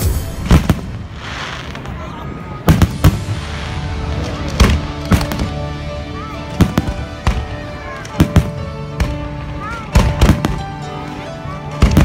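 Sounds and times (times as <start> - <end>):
music: 0.0 - 1.8, 2.6 - 12.0.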